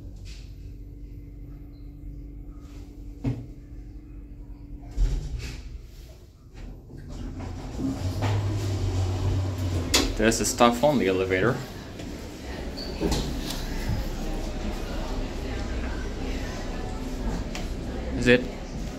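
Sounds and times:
elevator humming: 0:00.0 - 0:18.9
elevator doors sliding open: 0:06.8 - 0:18.7.

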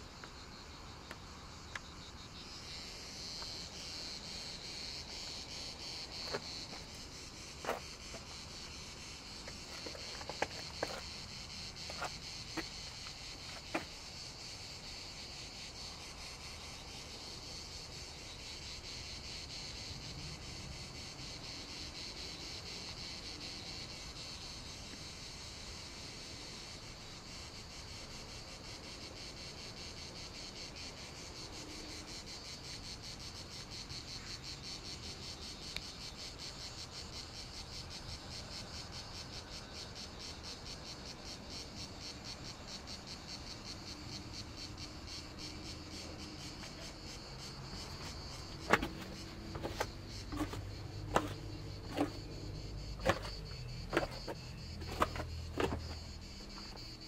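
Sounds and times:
cicadas buzzing: 0:00.0 - 0:57.0.

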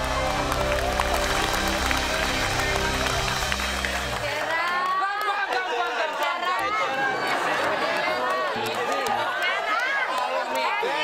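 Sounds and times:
people talking and laughing: 0:00.1 - 0:11.0.

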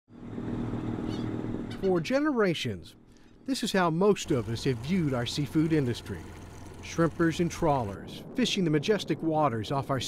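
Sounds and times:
boat engine humming: 0:00.1 - 0:08.8
man's voice: 0:06.9 - 0:10.0.

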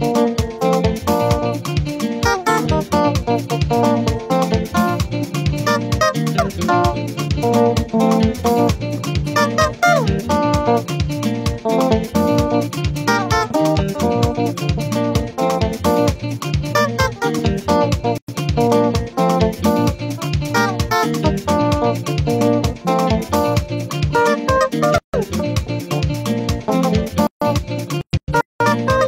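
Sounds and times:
bass line: 0:00.0 - 0:29.0
electric guitar melody: 0:00.0 - 0:29.0
steady beat: 0:00.0 - 0:29.0.

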